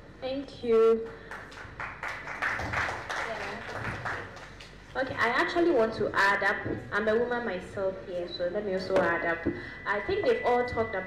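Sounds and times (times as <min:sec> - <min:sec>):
small audience applauding: 0:01.2 - 0:04.8.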